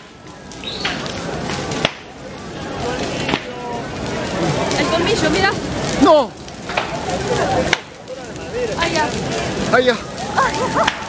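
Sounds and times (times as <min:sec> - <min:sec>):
bonfire flames rushing: 0:00.0 - 0:11.0
crowd voices: 0:00.0 - 0:11.0
sharp fire cracks: 0:00.0 - 0:11.0.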